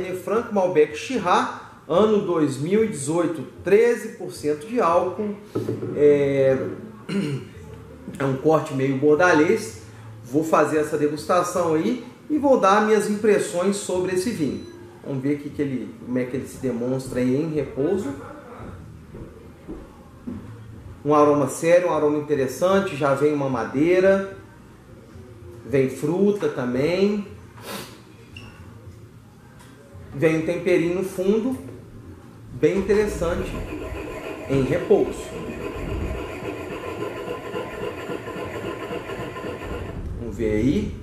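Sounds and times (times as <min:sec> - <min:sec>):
low steady rumble: 0:31.9 - 0:41.0
wine glass rubbing on table: 0:32.8 - 0:40.0.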